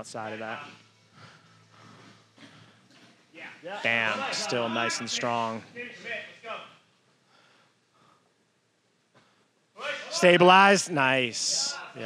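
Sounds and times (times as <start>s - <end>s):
faint breaths: 0.4s - 3.4s, 5.8s - 9.8s.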